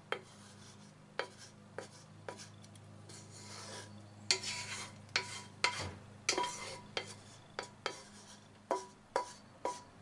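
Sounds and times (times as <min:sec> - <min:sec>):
spatula scraping frying pan: 0:00.1 - 0:09.9.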